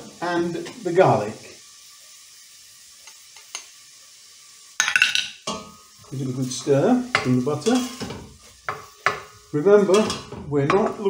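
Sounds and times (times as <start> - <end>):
onion sizzling in butter: 0.0 - 11.0.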